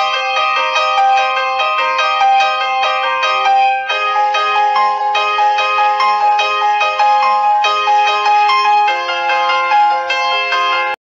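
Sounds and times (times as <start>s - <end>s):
chiming bell-like melody: 0.0s - 11.0s.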